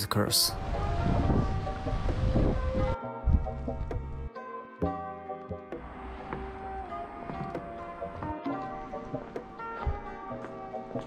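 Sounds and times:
background music: 0.0 - 11.0
wind buffeting microphone: 0.6 - 4.3.

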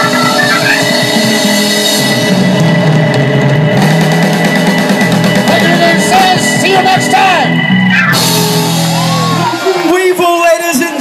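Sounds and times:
electric blues band playing: 0.0 - 11.0.

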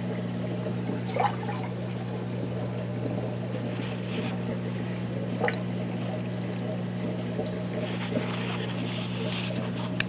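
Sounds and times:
water bubbling: 0.0 - 8.3
aquarium pump humming: 0.0 - 10.0.

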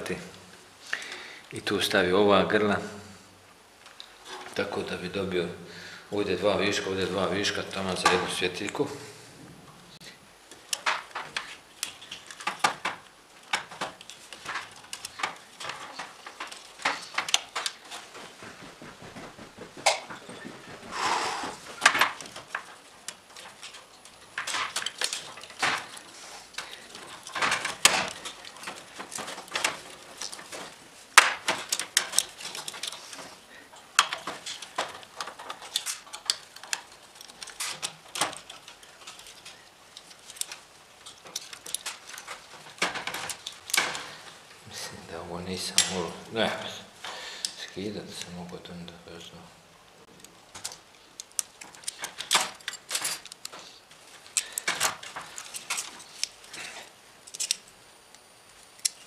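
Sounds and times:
plastic lamp holders clicking and rattling: 7.1 - 8.8, 10.4 - 20.8, 21.6 - 48.3, 50.1 - 57.8.

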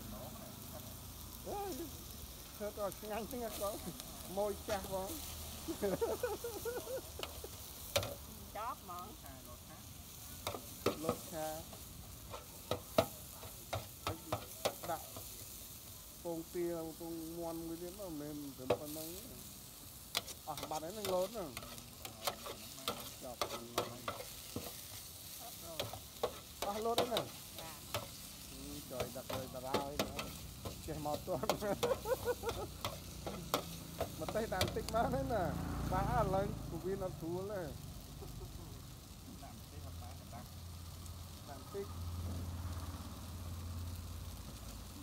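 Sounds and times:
faint hiss: 0.0 - 45.0
noodles sizzling in a pan: 0.0 - 45.0
metal spatula scraping a pan: 20.1 - 34.9.

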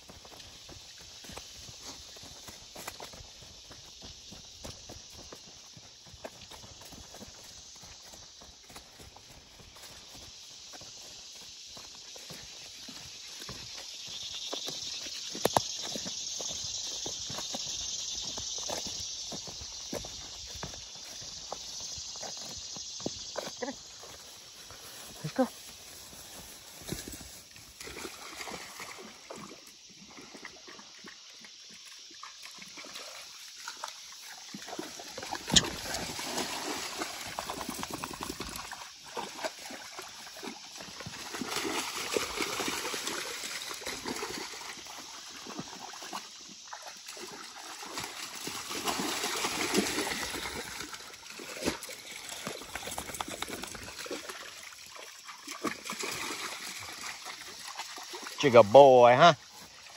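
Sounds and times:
footsteps crunching over twigs: 0.0 - 28.0
dog splashing through water: 27.7 - 30.9, 31.8 - 58.4.

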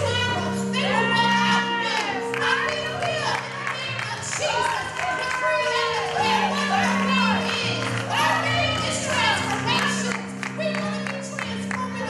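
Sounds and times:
held accompaniment chords: 0.0 - 12.0
woman singing gospel: 0.0 - 12.0.

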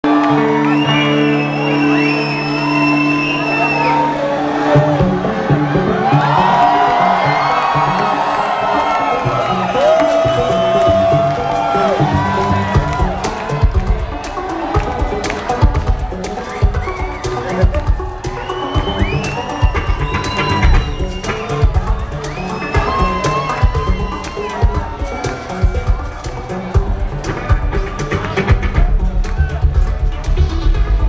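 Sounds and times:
crowd cheering and whooping: 0.0 - 29.7
live rock electronica band: 0.0 - 31.0
heavy drum beat: 11.9 - 31.0.

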